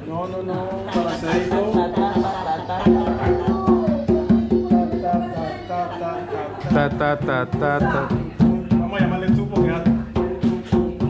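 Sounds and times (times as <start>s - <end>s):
hand drum strokes: 0.8s - 5.6s, 6.7s - 11.0s.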